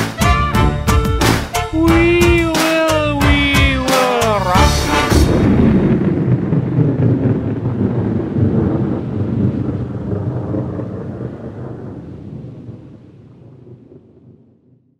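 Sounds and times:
deep noisy rumble: 4.5 - 12.8.

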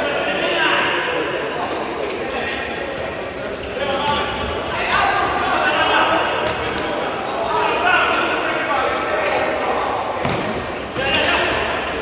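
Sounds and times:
crowd voices and shouting: 0.0 - 12.0.

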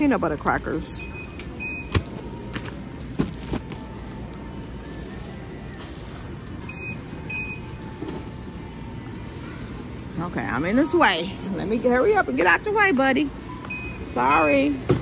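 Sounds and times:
store background hum: 0.0 - 15.0.

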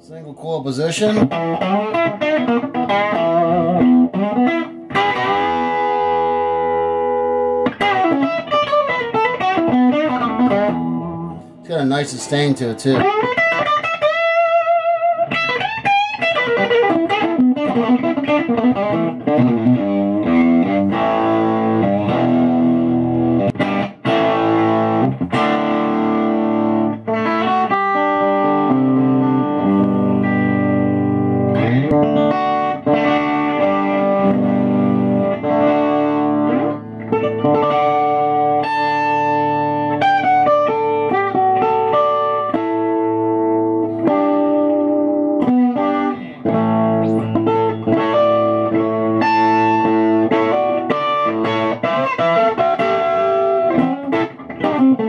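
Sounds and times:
electric guitar lead: 0.0 - 55.0.

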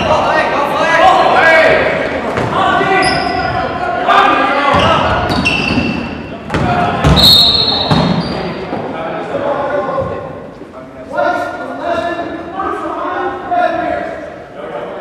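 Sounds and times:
sneaker squeaks: 2.4 - 3.6, 4.7 - 8.6.

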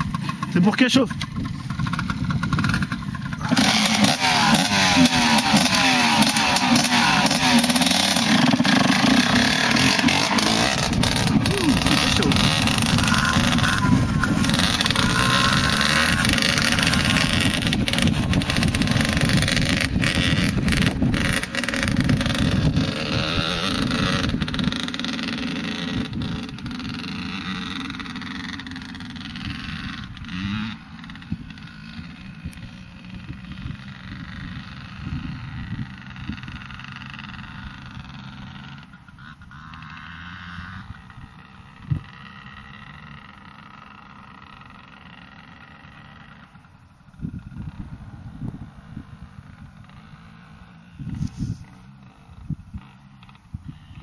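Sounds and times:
motocross bike revving: 0.0 - 54.0.

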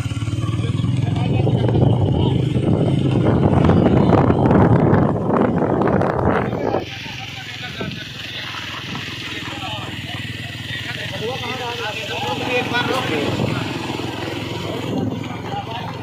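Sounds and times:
people's voices: 0.0 - 16.0
small motorcycles running: 0.0 - 16.0.

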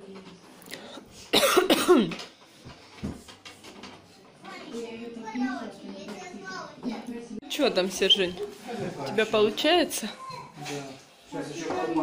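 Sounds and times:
person coughing: 1.3 - 2.2.

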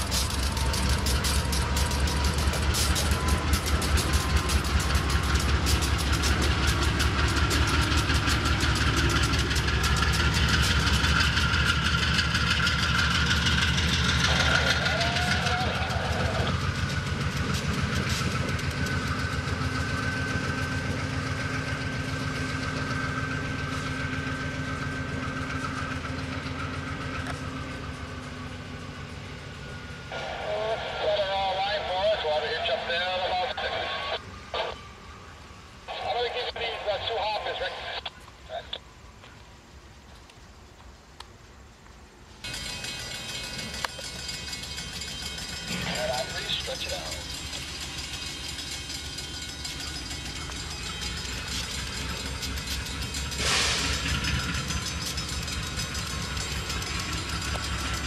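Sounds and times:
diesel locomotives passing: 0.0 - 58.0.

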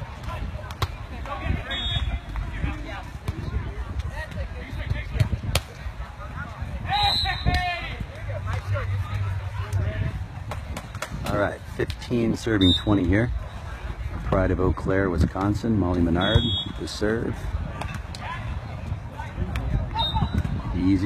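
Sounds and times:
faint indistinct voices: 0.0 - 21.0.

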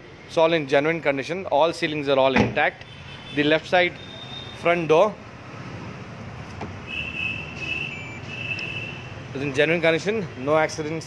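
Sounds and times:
high electronic beep: 6.9 - 9.0.

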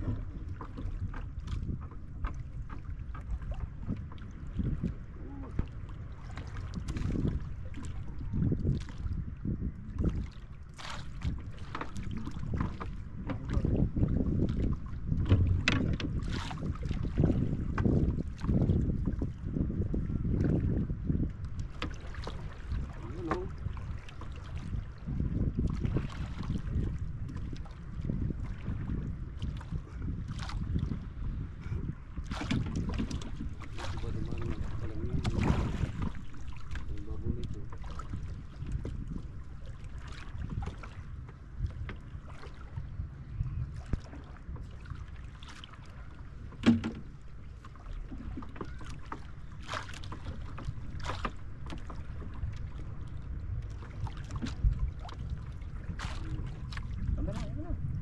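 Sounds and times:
paddles splashing water: 0.0 - 58.0
wind rumble on microphone: 0.0 - 58.0.

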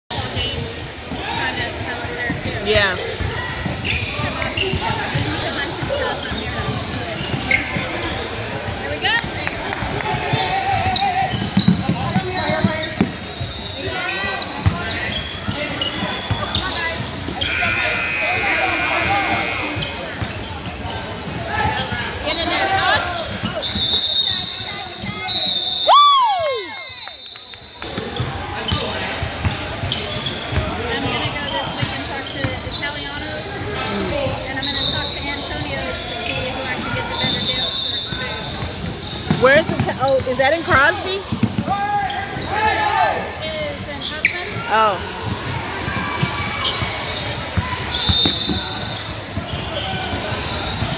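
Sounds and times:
spectators talking: 0.1 - 50.9
basketball bouncing on court: 38.1 - 41.7.

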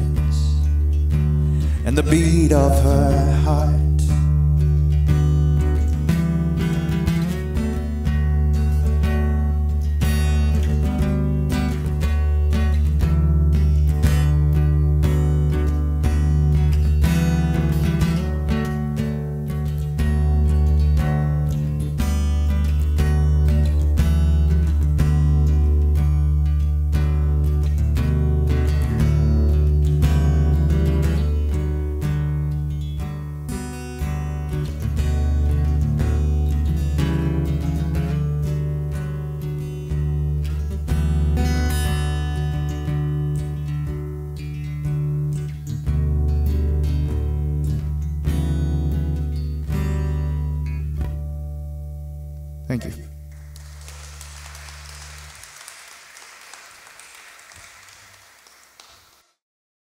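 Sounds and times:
acoustic guitar playing: 0.0 - 58.9.

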